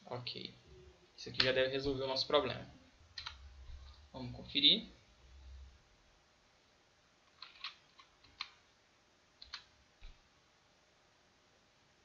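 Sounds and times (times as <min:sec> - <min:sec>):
computer mouse clicks: 0:03.2 - 0:04.0, 0:07.3 - 0:08.6, 0:09.4 - 0:10.2.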